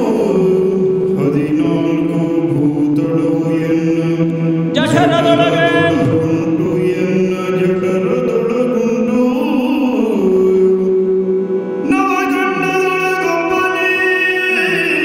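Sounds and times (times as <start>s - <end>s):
person singing chant-like line: 4.6s - 7.3s.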